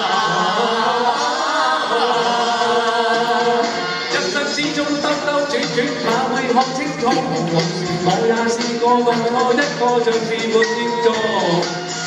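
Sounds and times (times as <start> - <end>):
pop accompaniment: 0.0 - 12.0
voices singing pop song: 0.0 - 12.0.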